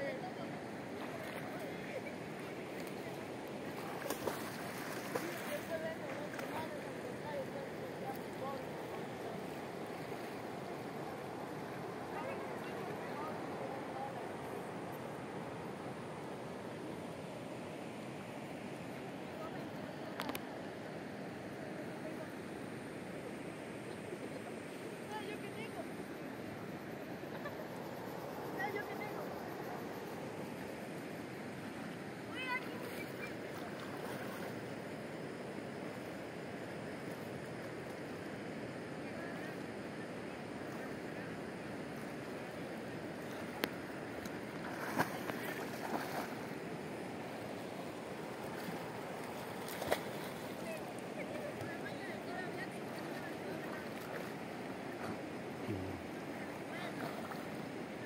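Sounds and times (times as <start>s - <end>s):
wind: 0.0s - 58.0s
river water rushing: 40.4s - 58.0s.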